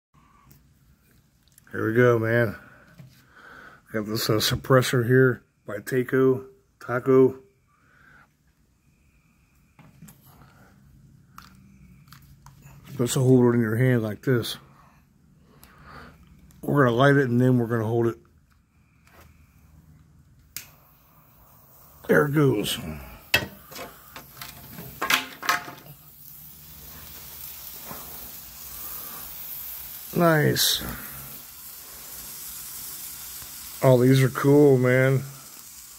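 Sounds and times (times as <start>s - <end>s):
firework spraying sparks hiss: 20.6s - 35.9s.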